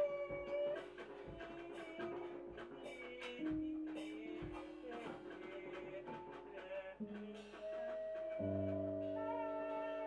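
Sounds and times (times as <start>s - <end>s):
light drum hits: 0.0s - 9.0s.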